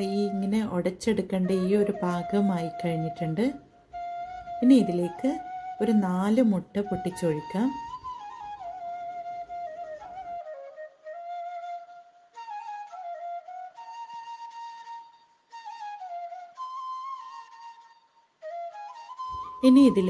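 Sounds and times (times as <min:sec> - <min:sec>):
wind instrument melody: 0:00.0 - 0:20.0.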